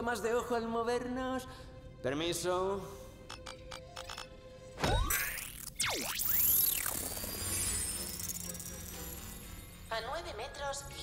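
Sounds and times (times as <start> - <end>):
film score music: 0.0 - 11.0
sci-fi sweeping electronic tones: 5.0 - 9.9
high shimmering whir: 5.2 - 9.9.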